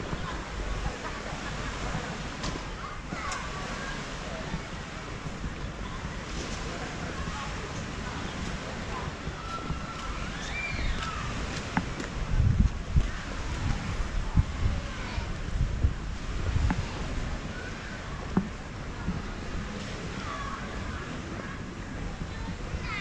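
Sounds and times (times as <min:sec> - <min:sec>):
faint distant voices: 0:00.0 - 0:23.0
wind buffeting microphone: 0:00.0 - 0:23.0.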